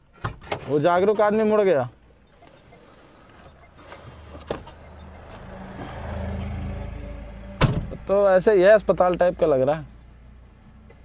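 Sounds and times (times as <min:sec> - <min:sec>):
vehicle engine passing: 0:03.7 - 0:08.3.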